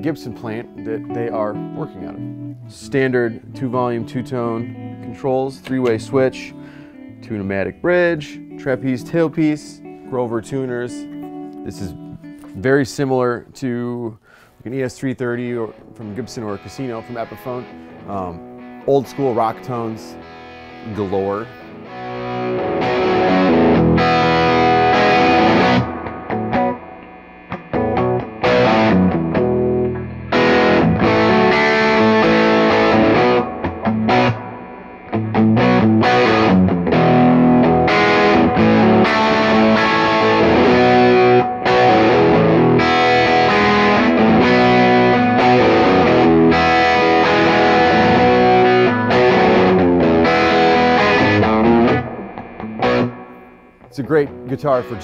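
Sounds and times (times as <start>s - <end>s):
overdriven electric guitar riffs: 0.0s - 13.3s, 15.2s - 55.0s.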